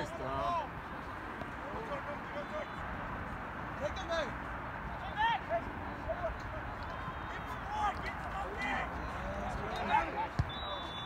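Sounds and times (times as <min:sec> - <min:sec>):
distant shouts of players: 0:04.9 - 0:11.0
ball being kicked thud: 0:10.3 - 0:10.6.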